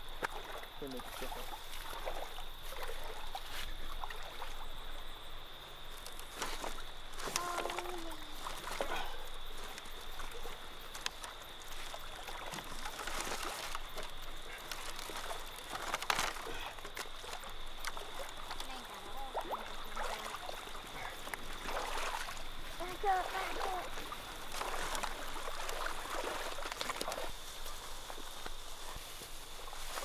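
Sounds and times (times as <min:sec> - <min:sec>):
dry branches crackling and snapping: 0:10.8 - 0:18.8.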